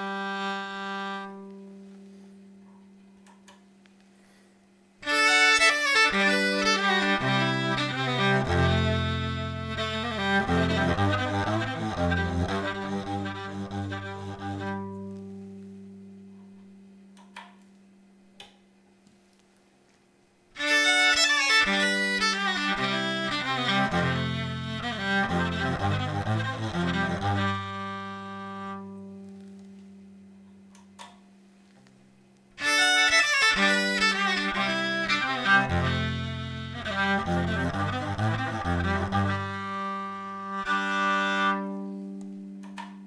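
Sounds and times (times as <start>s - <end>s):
bowed electric violin: 0.0s - 2.2s, 5.0s - 16.2s, 20.6s - 30.1s, 32.6s - 43.0s.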